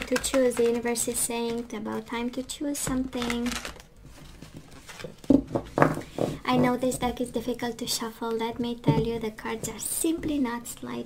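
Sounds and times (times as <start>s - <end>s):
cards being shuffled: 0.0s - 1.6s, 2.9s - 6.4s.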